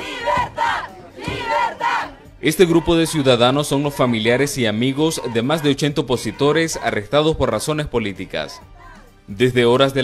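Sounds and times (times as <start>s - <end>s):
crowd shouting slogan: 0.0s - 7.1s.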